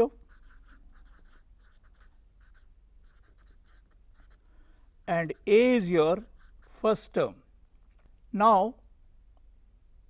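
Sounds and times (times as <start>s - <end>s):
marker pen scratching on whiteboard: 0.0s - 4.5s, 5.1s - 7.2s.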